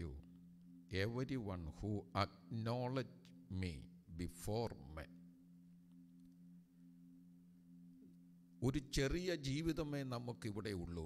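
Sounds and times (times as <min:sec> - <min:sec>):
faint low two-tone hum: 0:00.0 - 0:11.0.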